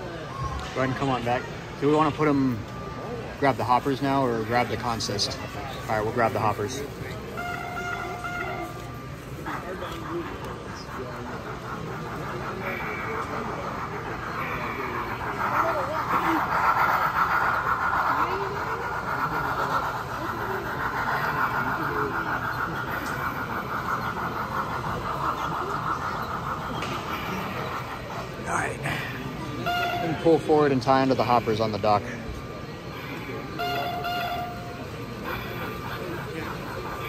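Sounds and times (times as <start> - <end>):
crowd chatter: 0.0 - 37.0
toy train motor buzzing whine: 3.6 - 37.0.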